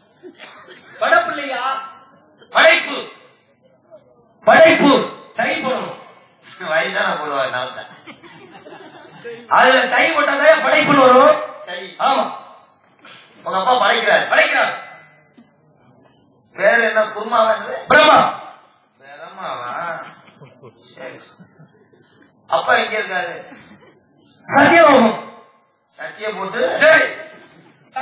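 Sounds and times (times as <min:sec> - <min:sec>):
crickets chirping: 0:00.0 - 0:28.0
man calling out: 0:00.9 - 0:03.2, 0:04.4 - 0:06.0, 0:24.5 - 0:25.2
man speaking into a microphone: 0:01.0 - 0:03.2, 0:04.4 - 0:06.0, 0:09.5 - 0:12.5, 0:24.5 - 0:25.3.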